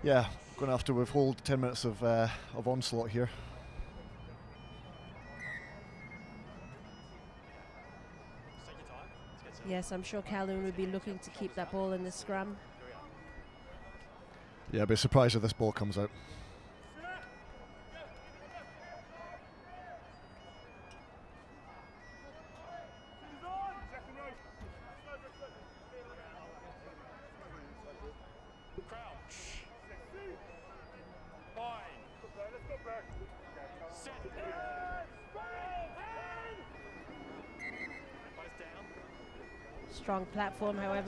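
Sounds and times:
players shouting and calling: 21.5 - 41.0.

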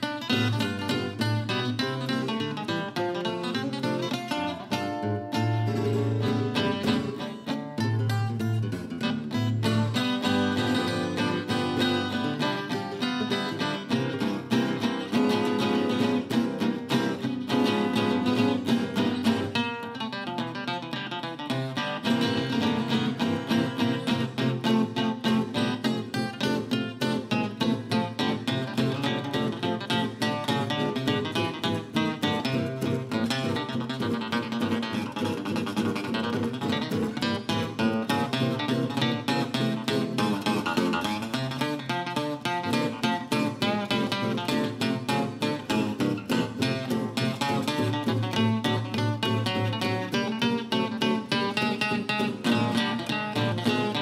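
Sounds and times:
fingerpicked acoustic guitar: 0.0 - 54.0.

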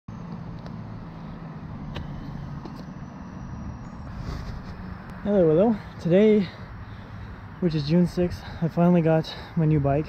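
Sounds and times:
low rumble of road traffic: 0.1 - 10.0.

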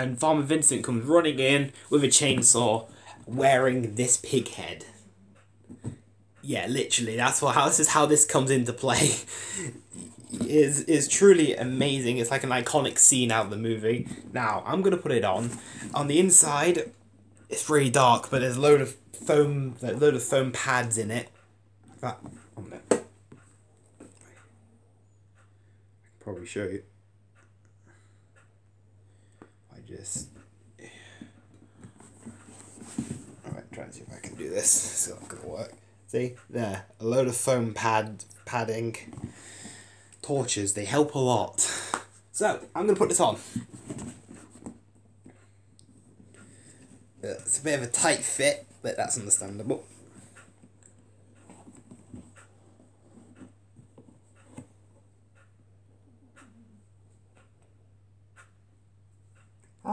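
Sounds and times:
mask rustling and tapping: 0.0 - 5.0, 5.6 - 21.2, 21.8 - 24.3, 29.3 - 36.0, 36.6 - 40.5, 41.8 - 55.5
handling rustles and knocks: 13.0 - 16.4, 31.2 - 35.9, 43.1 - 47.2.

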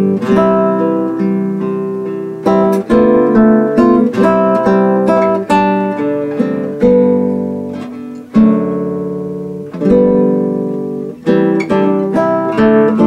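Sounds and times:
classical guitar fingerstyle: 0.0 - 13.0.

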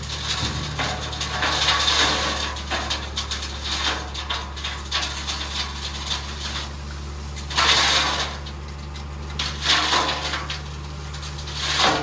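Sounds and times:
diesel truck engine running: 0.0 - 12.0
soil sliding and pouring out: 0.0 - 12.0.

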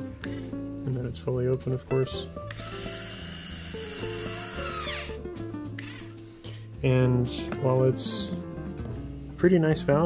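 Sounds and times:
background music: 0.0 - 10.0
small electric motor whining: 2.5 - 5.2.

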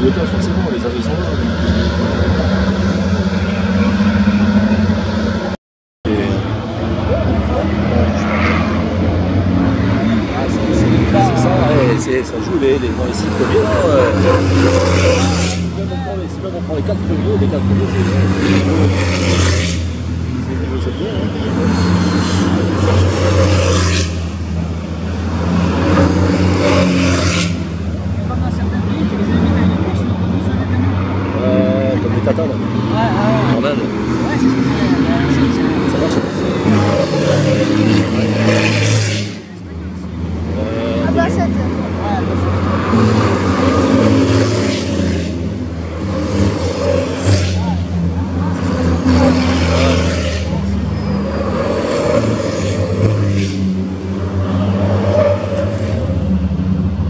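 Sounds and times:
racing truck diesel engines: 0.0 - 57.0.

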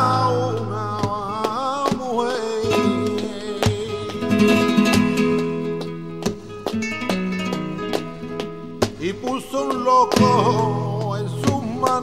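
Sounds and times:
acoustic guitar strums: 0.0 - 12.0
person singing flamenco: 0.0 - 12.0.

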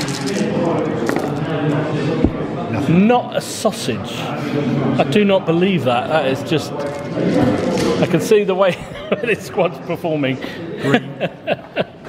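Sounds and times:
voices in room: 0.0 - 12.0
dice clattering on table: 1.0 - 1.4.

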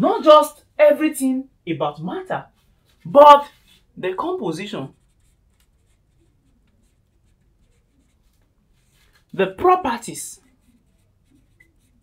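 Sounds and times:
marker pen writing on whiteboard: 2.9 - 12.0.

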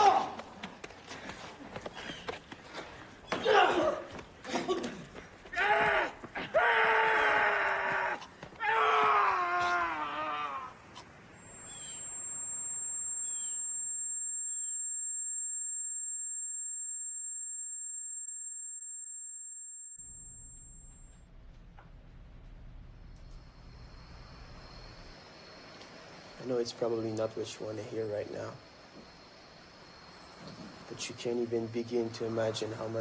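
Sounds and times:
man wailing and screaming: 5.6 - 10.7
low hum: 11.2 - 26.5
high-pitched ringing tone: 11.3 - 21.4.

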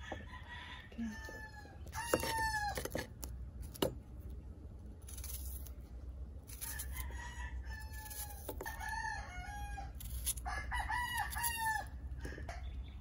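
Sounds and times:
rooster crowing: 0.0 - 3.0, 6.6 - 12.0
knife slicing onion: 5.0 - 5.8, 7.9 - 8.8, 9.9 - 10.5.

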